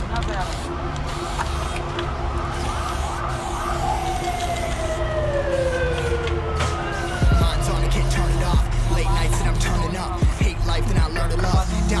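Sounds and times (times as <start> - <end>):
siren-like tone sliding downward: 0.6 - 8.9
hip-hop beat with deep bass: 5.6 - 12.0.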